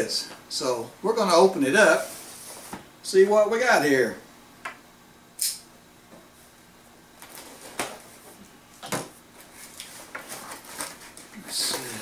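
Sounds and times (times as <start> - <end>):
cardboard crackling: 9.4 - 12.0
paper rustling: 9.4 - 12.0.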